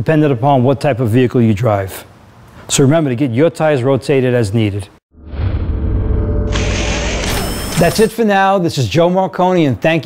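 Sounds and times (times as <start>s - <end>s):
low rumble: 5.1s - 7.7s
man speaking: 7.8s - 10.0s.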